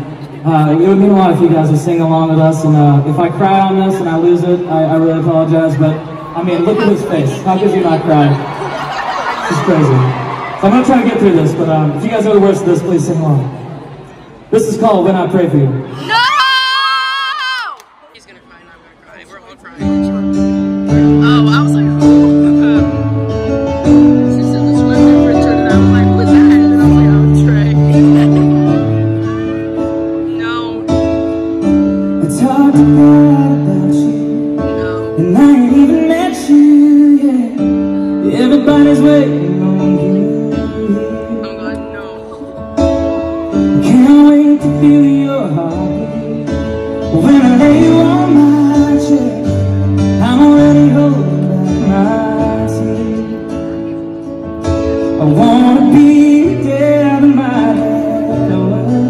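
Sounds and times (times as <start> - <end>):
piano: 0.0 - 17.6, 19.7 - 59.0
faint crowd noise: 0.0 - 59.0
high-pitched shout: 15.9 - 17.9
acoustic guitar: 19.7 - 59.0
man singing: 32.0 - 42.5, 43.5 - 54.0, 54.9 - 59.0.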